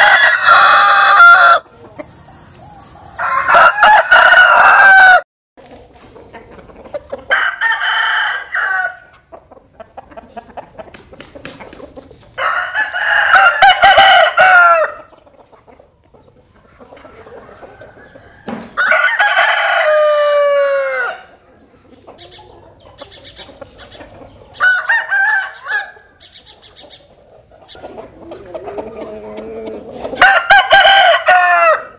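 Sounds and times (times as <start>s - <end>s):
rooster crowing: 0.0s - 1.7s, 3.2s - 5.3s, 7.3s - 9.1s, 12.4s - 15.1s, 18.0s - 21.3s, 24.6s - 26.0s, 30.2s - 31.9s.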